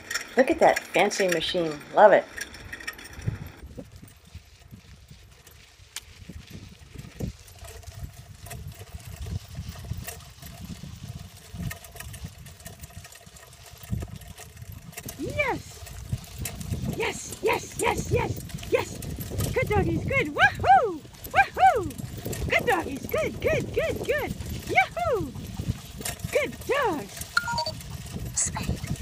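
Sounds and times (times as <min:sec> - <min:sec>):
cart rolling on dirt track: 0:00.0 - 0:29.0.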